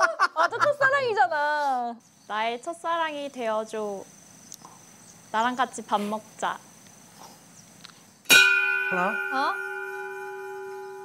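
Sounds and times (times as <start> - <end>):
large bell ringing: 8.3 - 11.0.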